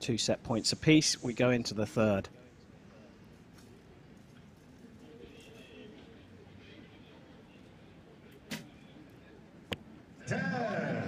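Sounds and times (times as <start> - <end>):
faint outdoor background: 0.0 - 11.0
bow string snap: 8.4 - 8.7
arrow striking target: 8.5 - 8.7.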